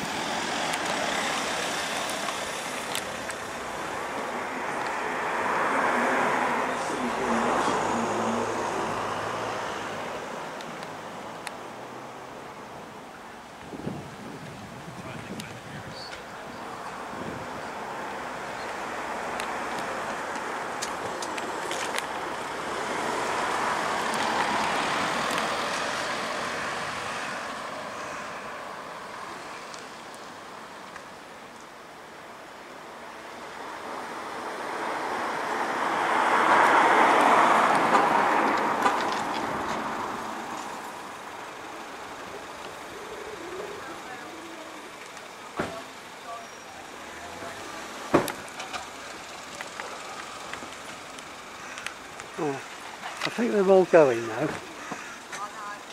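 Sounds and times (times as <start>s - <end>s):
vehicle passing: 0.0s - 12.5s, 16.4s - 30.6s, 33.4s - 45.1s.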